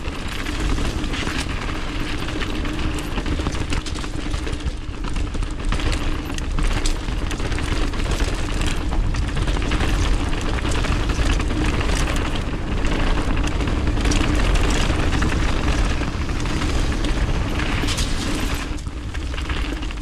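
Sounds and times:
bike tyres rattling on gravel: 0.0 - 20.0
wind buffeting: 7.0 - 20.0.

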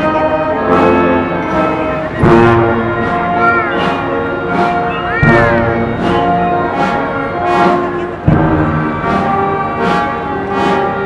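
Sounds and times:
brass band funeral march: 0.0 - 11.0
drum beat: 2.2 - 6.9.

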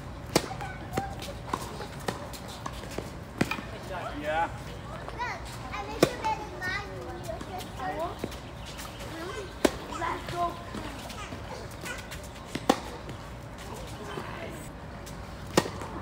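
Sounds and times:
tennis ball hit with rackets: 0.3 - 3.8, 5.9 - 6.2, 12.5 - 13.1, 15.4 - 16.0.

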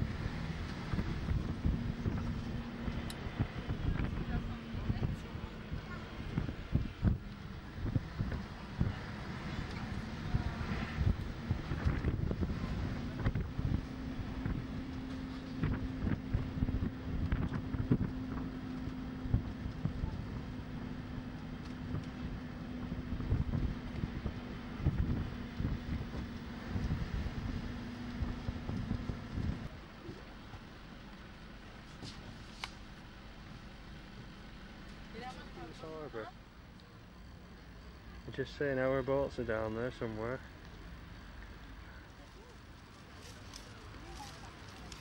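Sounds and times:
wind buffeting microphone: 0.0 - 29.7
bus engine drone: 0.0 - 45.0.

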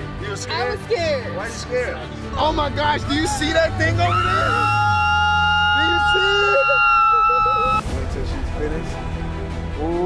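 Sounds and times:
excited voices shouting and laughing: 3.3 - 7.8.

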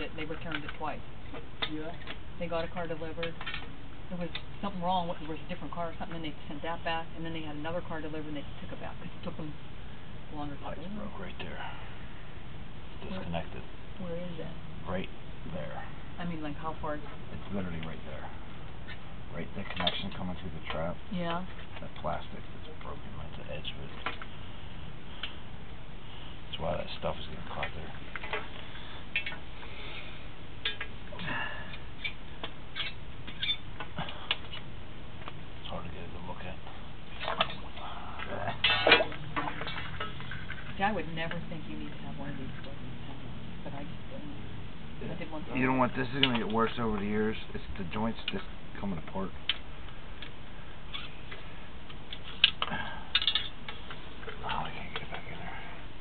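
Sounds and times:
low room noise: 0.0 - 56.0
muffled talk: 19.3 - 24.1.

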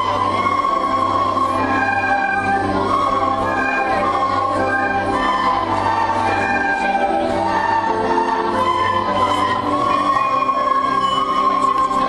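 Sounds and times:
children playing recorders: 0.0 - 12.0.

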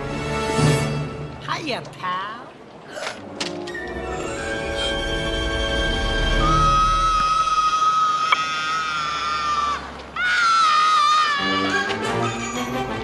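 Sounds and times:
film score music: 0.0 - 13.0
child screaming: 6.6 - 12.8.

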